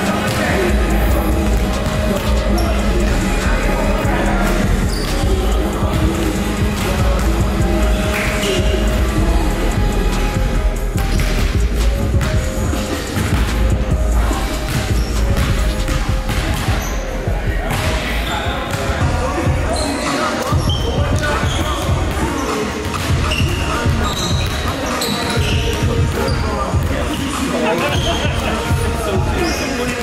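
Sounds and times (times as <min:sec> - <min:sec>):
background voices: 0:00.0 - 0:30.0.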